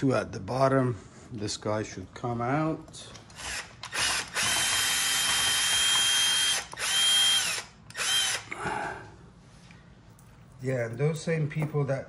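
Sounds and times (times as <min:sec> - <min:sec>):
cordless drill whining: 0:03.3 - 0:08.5.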